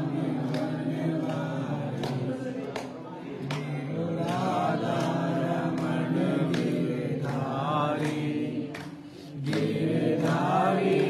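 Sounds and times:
group chanting: 0.0s - 11.0s.

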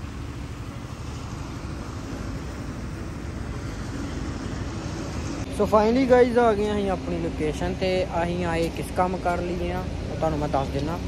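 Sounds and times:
car engine rumble: 0.0s - 11.0s
road and air noise: 0.0s - 11.0s.

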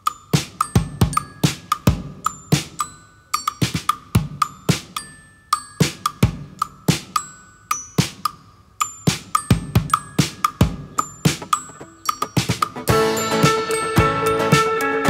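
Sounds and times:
steady percussive beat: 0.0s - 5.1s, 5.8s - 7.3s, 7.9s - 8.4s, 9.0s - 15.0s
keyboard: 0.0s - 15.0s
strummed guitars: 11.4s - 15.0s.

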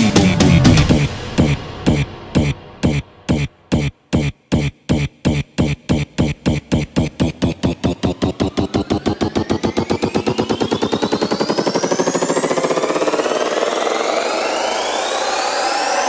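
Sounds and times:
drum roll speeding up: 0.0s - 16.0s
synth tones sweeping upward: 5.6s - 16.0s.

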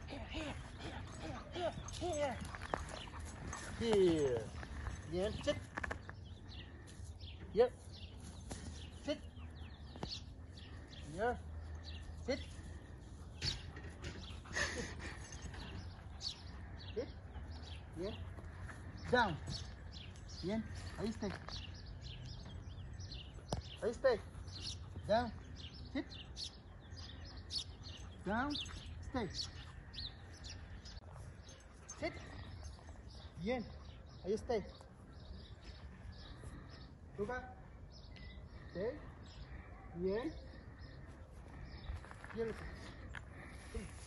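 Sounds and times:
small birds chirping: 0.0s - 44.0s
man giving spoken command: 5.1s - 5.6s, 11.0s - 11.4s, 23.8s - 24.3s, 25.0s - 26.1s, 33.4s - 34.7s, 37.2s - 37.6s, 40.0s - 40.4s.

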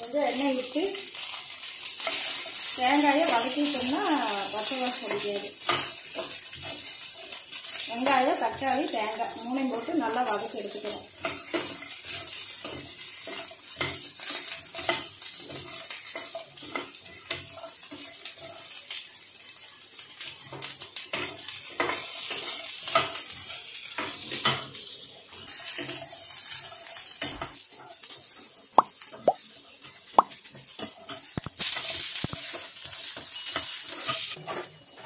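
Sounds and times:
food sizzling in oil: 0.0s - 35.0s
spoon scraping pan: 29.8s - 35.0s.

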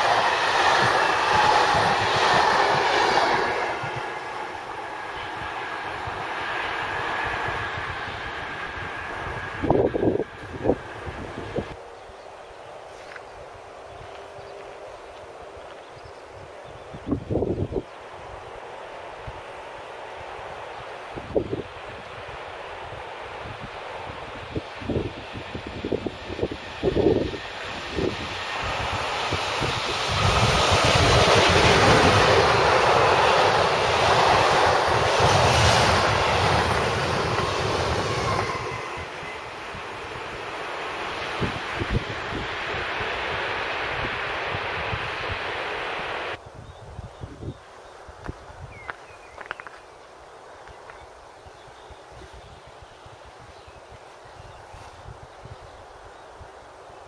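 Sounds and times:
freight train rolling past: 0.0s - 12.8s, 13.5s - 46.4s.

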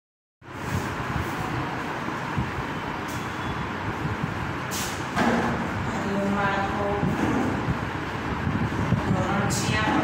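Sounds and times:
brief high hiss: 4.7s - 5.0s.

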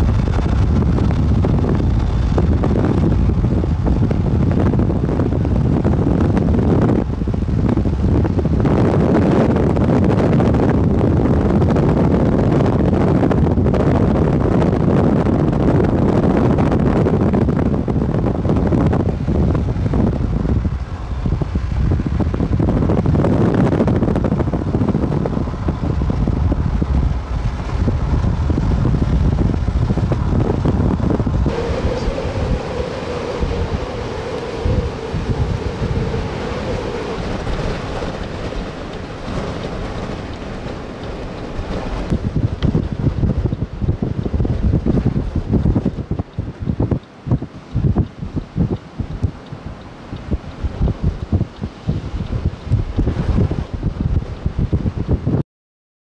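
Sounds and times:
wind buffeting microphone: 0.0s - 55.4s
steady hum: 15.0s - 39.6s.

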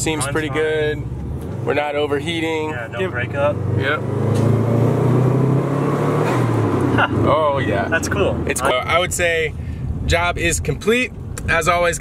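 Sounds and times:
car engine drone from inside cabin: 0.0s - 11.6s.

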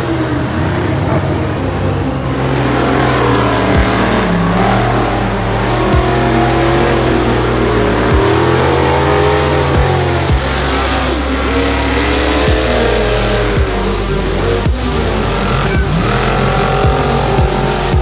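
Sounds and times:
buggy engine revving: 0.0s - 18.0s
electronic music with heavy bass: 0.0s - 18.0s.

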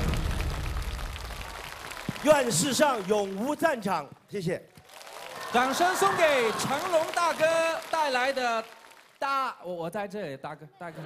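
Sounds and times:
studio audience applauding: 0.0s - 4.1s, 4.7s - 9.4s.

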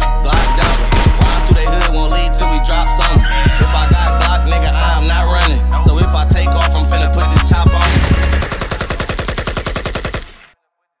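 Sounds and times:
hip-hop beat with heavy bass: 0.0s - 9.4s
machine-gun fire: 0.3s - 1.5s, 7.8s - 10.6s.

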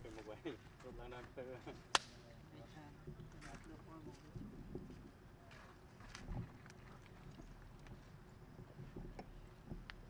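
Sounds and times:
people talking in background: 0.0s - 5.8s.

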